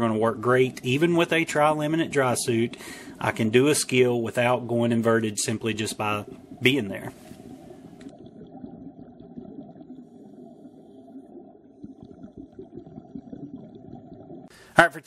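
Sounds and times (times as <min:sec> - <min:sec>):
muffled underwater rumble: 0:00.0 - 0:14.5.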